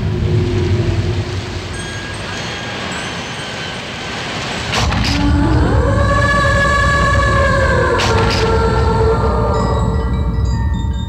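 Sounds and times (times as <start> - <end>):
continuous low rumble: 0.0 - 3.2, 3.9 - 11.0
high bell-like chime tones: 1.7 - 4.2.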